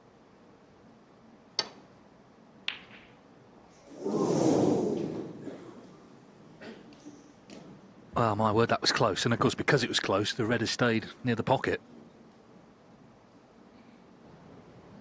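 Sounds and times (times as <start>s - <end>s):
cue striking ball click: 2.6s - 3.2s
snooker balls clicking: 2.6s - 3.3s.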